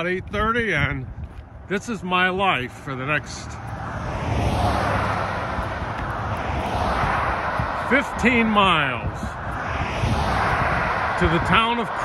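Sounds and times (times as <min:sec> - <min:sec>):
vehicles passing on highway: 0:00.0 - 0:12.0.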